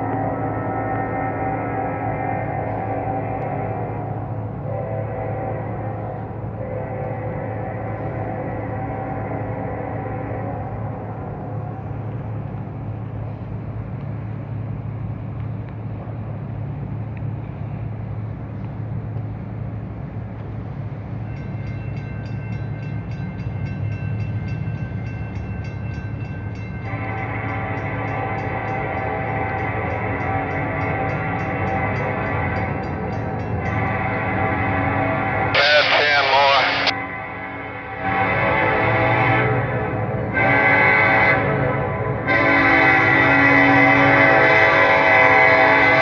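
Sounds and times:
train horn: 0:00.0 - 0:12.2, 0:26.8 - 0:46.0
diesel locomotive rumble: 0:00.0 - 0:46.0
locomotive bell ringing: 0:21.0 - 0:36.9.

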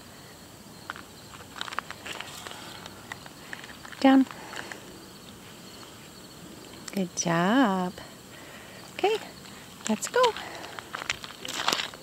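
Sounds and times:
insects chirring: 0:00.0 - 0:12.0
gravel crunching underfoot: 0:00.8 - 0:06.2, 0:08.5 - 0:12.0.

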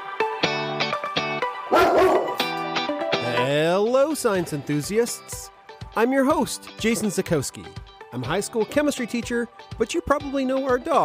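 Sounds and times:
dog barking: 0:01.7 - 0:02.5.

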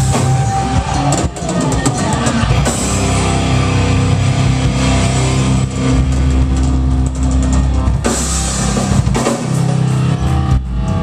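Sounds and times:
heavy rock band sustained chord: 0:00.0 - 0:11.0.

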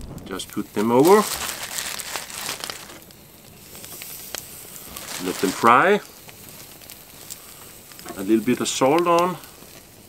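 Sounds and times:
fire crackles: 0:00.0 - 0:10.0
wood fire hissing: 0:00.0 - 0:10.0.

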